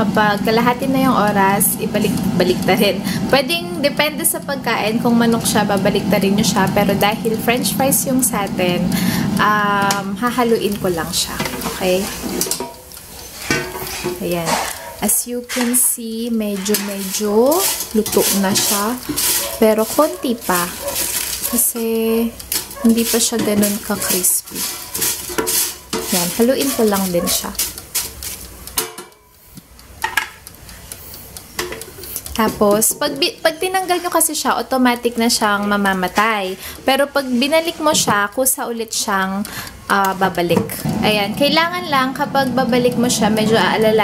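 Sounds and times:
faint steady hum: 0:00.0 - 0:20.8
tongs scraping metal basket: 0:00.3 - 0:44.0.

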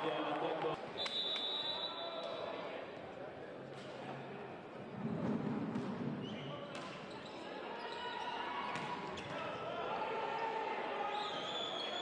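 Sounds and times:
murmur of spectators: 0:00.0 - 0:12.0.

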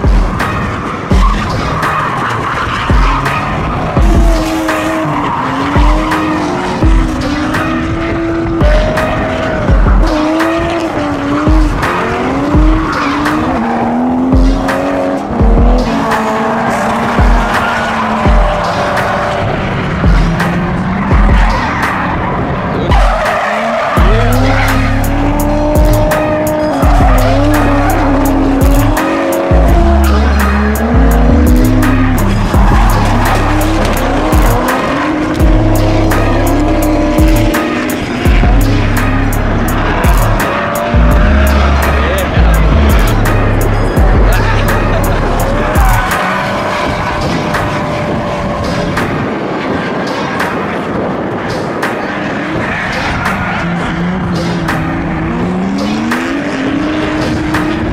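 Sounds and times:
electronic music with kick drum: 0:00.0 - 0:02.0, 0:02.7 - 0:22.0, 0:23.9 - 0:48.4
car engines revving: 0:00.0 - 0:57.9
heavy bass line: 0:03.8 - 0:07.5, 0:08.4 - 0:18.6, 0:19.2 - 0:21.6, 0:24.0 - 0:46.6
tyres squealing: 0:21.2 - 0:48.2.

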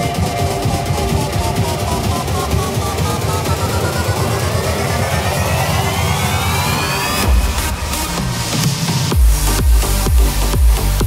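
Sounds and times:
electronic dance music: 0:00.0 - 0:11.0
rapid drum roll: 0:00.0 - 0:11.0
rising synth sweep: 0:00.0 - 0:11.0.

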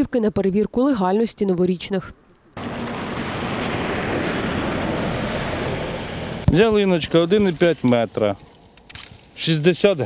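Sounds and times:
traffic on wet road: 0:02.6 - 0:08.3.

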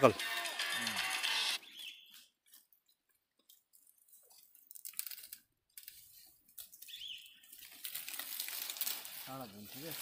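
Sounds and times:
bird chirp: 0:01.6 - 0:02.6, 0:06.7 - 0:07.7
palm fronds rustling: 0:02.1 - 0:10.0.

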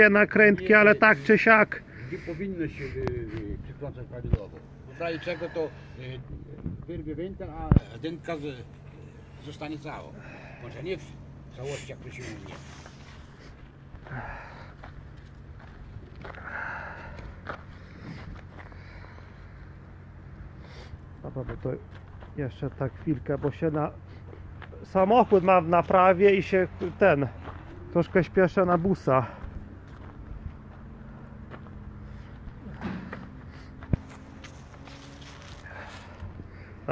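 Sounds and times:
steady low hum: 0:00.0 - 0:36.9
footsteps scuffing on dirt: 0:12.3 - 0:19.3, 0:21.3 - 0:36.4.

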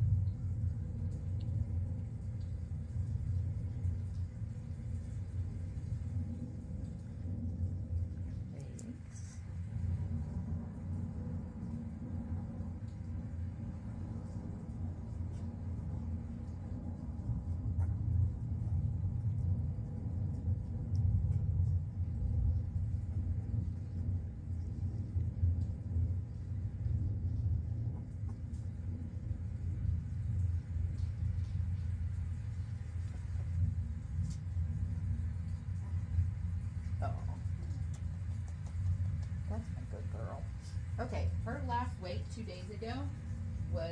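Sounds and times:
steady low rumble: 0:00.0 - 0:43.9.

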